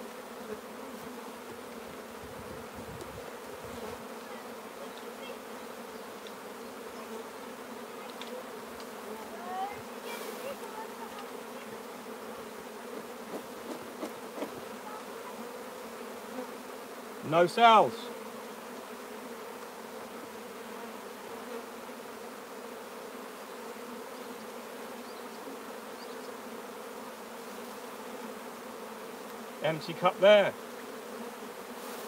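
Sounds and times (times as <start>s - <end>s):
honeybees buzzing: 0.0s - 32.0s.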